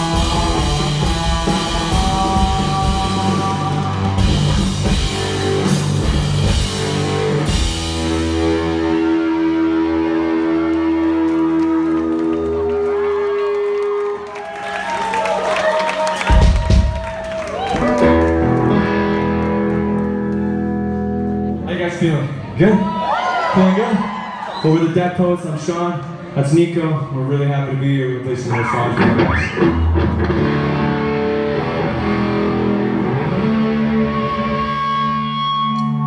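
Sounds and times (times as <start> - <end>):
distorted electric guitar chords: 0.0 - 12.3, 17.9 - 21.7, 28.6 - 36.0.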